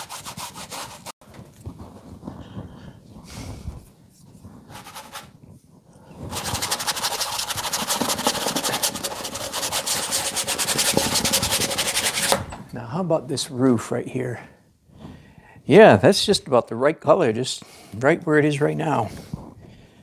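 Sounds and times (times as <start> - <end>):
paintbrush scrubbing on canvas: 0.0 - 1.2, 3.2 - 5.6, 6.2 - 12.4.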